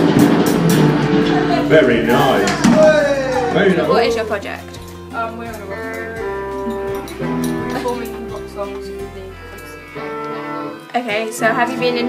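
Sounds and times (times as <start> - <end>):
guitar chords ringing: 0.0 - 12.0.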